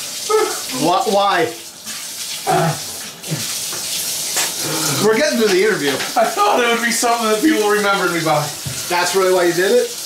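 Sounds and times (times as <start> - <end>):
faucet water pouring and splashing: 0.0 - 10.0.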